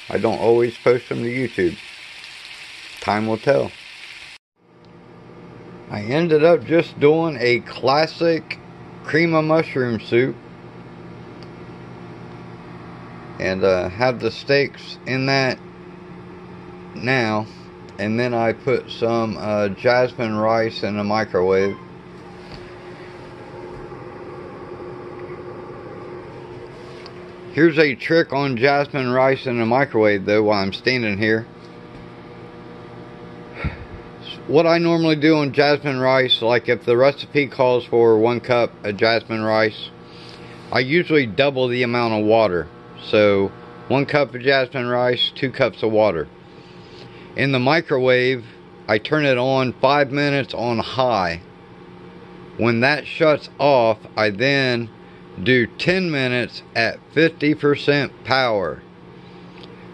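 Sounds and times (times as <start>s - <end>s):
food sizzling in skillet: 0.0s - 4.4s
kitchen appliance hum: 0.0s - 59.9s
breath close to microphone: 40.0s - 40.7s, 46.4s - 47.4s.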